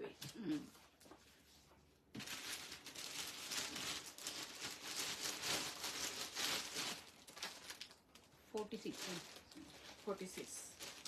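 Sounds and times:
fabric rustling: 0:00.5 - 0:07.9, 0:08.6 - 0:11.0.

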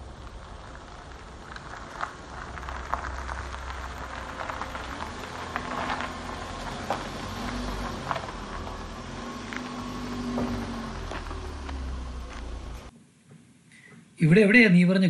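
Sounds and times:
car engine rumble: 0:00.0 - 0:12.9
stones crackling under tyres: 0:00.0 - 0:12.9.

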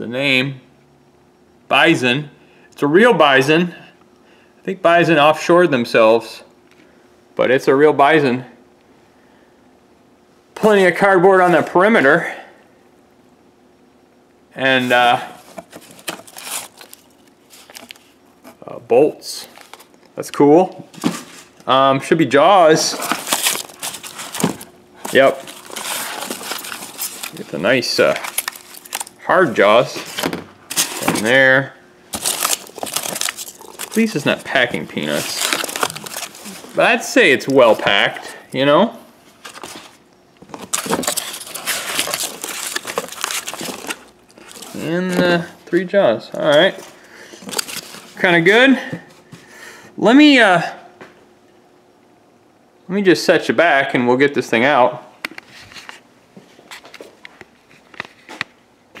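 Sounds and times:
cardboard packing rustling: 0:14.7 - 0:18.6, 0:19.4 - 0:20.0, 0:20.8 - 0:21.6, 0:22.7 - 0:38.6, 0:39.3 - 0:49.0.

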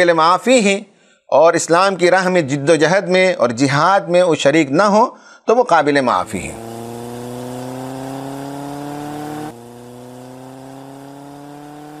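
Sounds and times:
buzzy rising drone: 0:06.1 - 0:12.0.

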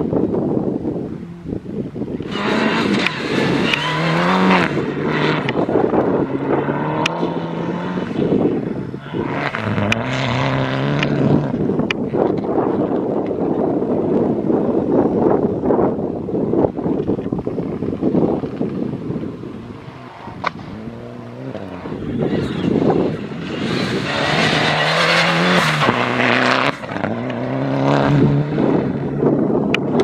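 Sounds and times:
rally car engine revving: 0:02.2 - 0:13.1, 0:17.5 - 0:30.0.

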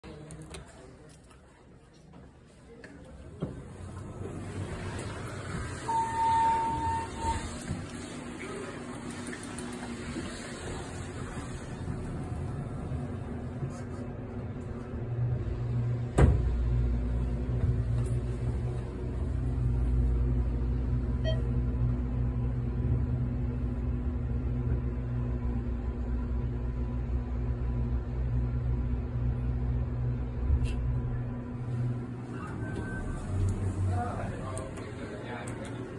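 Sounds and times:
elevator rumbling hum: 0:03.0 - 0:35.9
elevator chime: 0:05.8 - 0:07.6, 0:21.2 - 0:21.6
elevator car thump: 0:15.7 - 0:18.9.

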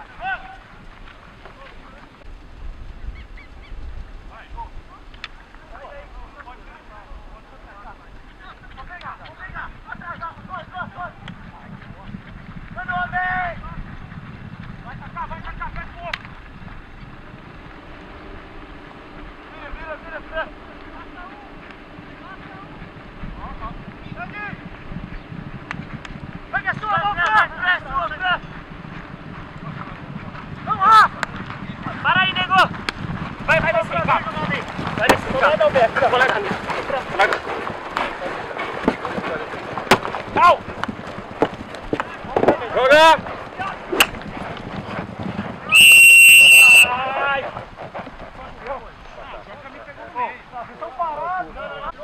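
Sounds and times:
umpire's whistle blast: 0:45.7 - 0:47.0
players shouting calls: 0:45.7 - 0:47.5.

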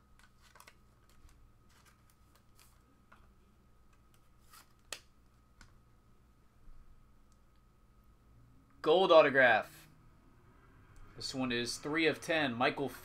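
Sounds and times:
card handling clicks and rustles: 0:00.0 - 0:03.3.

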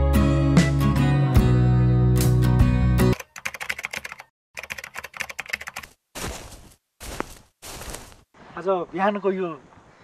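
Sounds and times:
rapid keyboard typing clicks: 0:03.2 - 0:05.9.

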